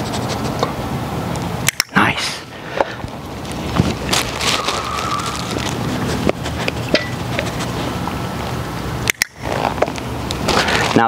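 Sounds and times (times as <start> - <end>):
sharp clicks: 1.3 - 2.0, 9.0 - 9.4.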